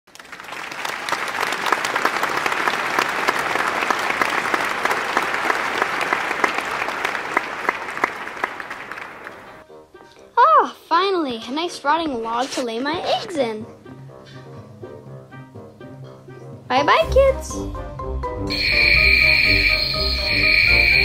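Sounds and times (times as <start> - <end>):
crowd applause: 0.1 - 9.6, 18.5 - 21.0.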